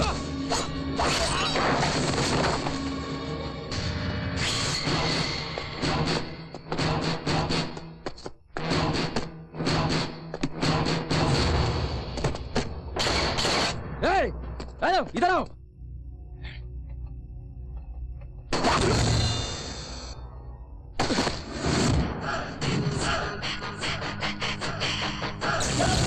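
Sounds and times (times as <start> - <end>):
film score drone: 0.0 - 8.0, 15.4 - 26.0
impact effects of blows: 4.8 - 14.8.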